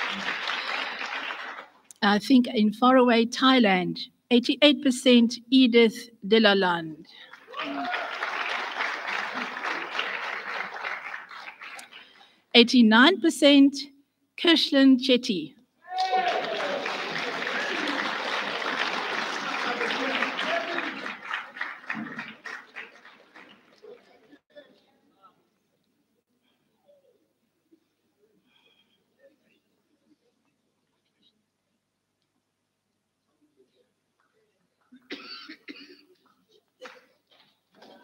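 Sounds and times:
audience applauding: 0.0s - 1.8s, 7.2s - 12.3s, 15.9s - 24.4s
voices cheering: 7.4s - 10.9s, 15.8s - 24.0s
person coughing: 35.0s - 36.2s.

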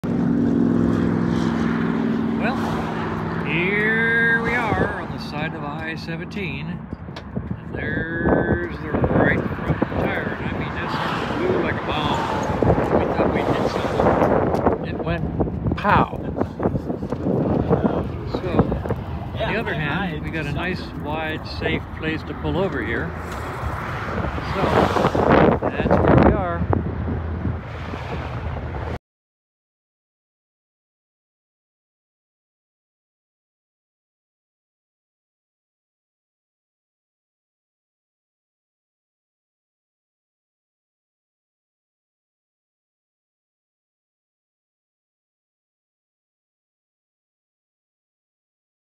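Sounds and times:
highway traffic rushing past: 0.0s - 29.0s
vehicle engine drone: 0.0s - 29.0s
wind buffeting microphone: 0.1s - 29.0s
voice-like sounds: 2.4s - 5.3s.

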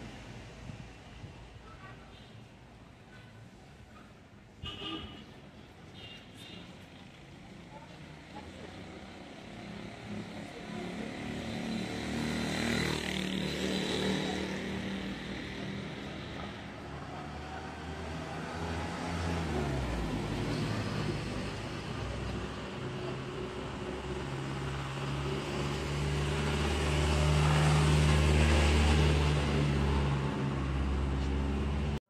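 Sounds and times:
motor vehicles driving past: 6.8s - 32.0s.

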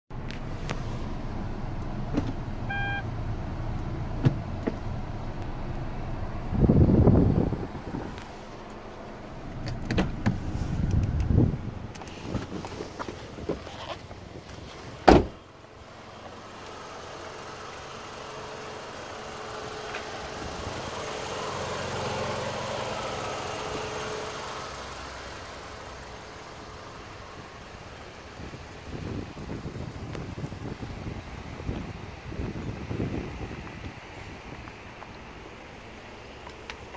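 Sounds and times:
car engine idling: 0.1s - 36.9s
short electronic beep: 2.7s - 3.1s
hood slamming: 12.2s - 15.4s.

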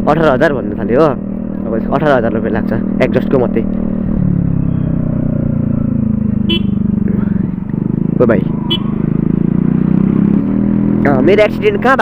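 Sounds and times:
scooter engine running: 0.1s - 12.0s
scooter horn toot: 6.4s - 6.9s, 8.7s - 9.0s.

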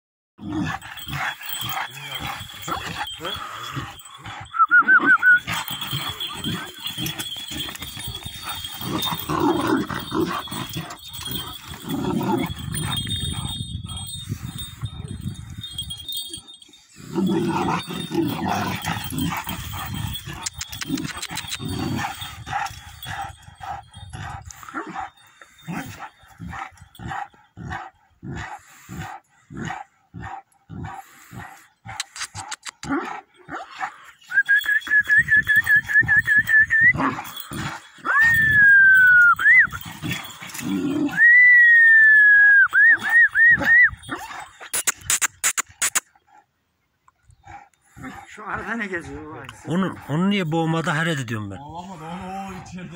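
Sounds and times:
dog whining: 4.5s - 11.5s.

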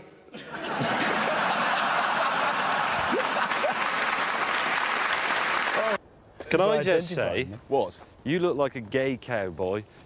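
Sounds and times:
audience laughing: 0.3s - 4.4s
audience clapping: 1.5s - 6.0s.

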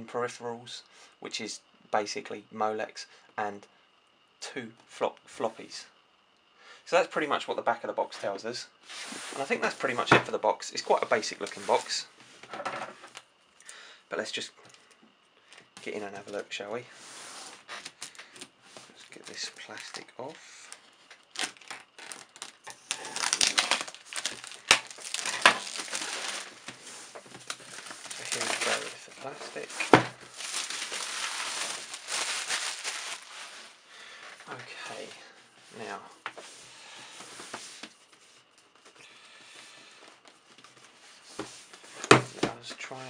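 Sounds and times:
plastic wrap crinkling: 20.7s - 33.8s.

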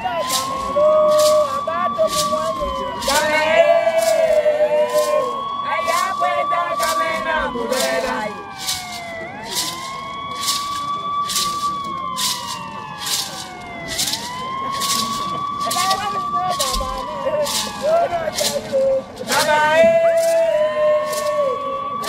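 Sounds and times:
siren wailing: 0.0s - 22.0s.

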